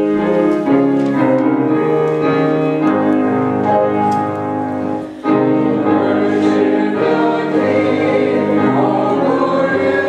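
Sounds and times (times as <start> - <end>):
piano accompaniment: 0.0 - 10.0
congregation singing a hymn: 2.3 - 10.0.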